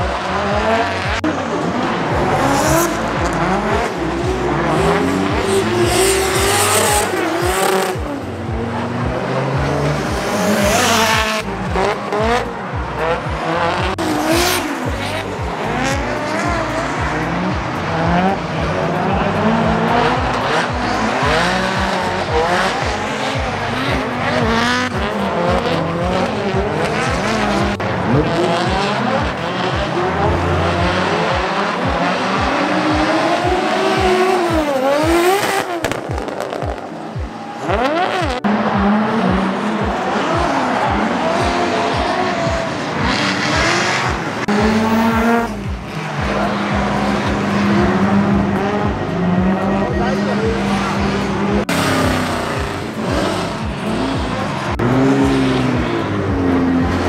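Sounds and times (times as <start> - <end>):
drift car engines revving: 0.0 - 57.0.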